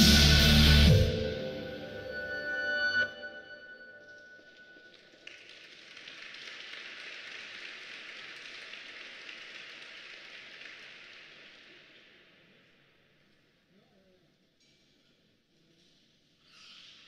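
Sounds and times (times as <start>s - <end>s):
thin applause from small crowd: 4.8s - 12.5s.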